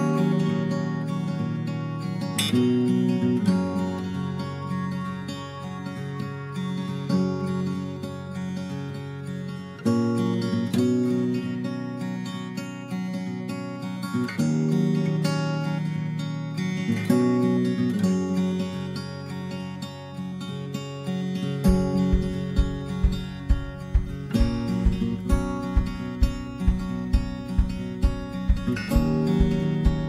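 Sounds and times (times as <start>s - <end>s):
acoustic guitar music: 0.0s - 30.0s
steady low beat: 21.7s - 30.0s.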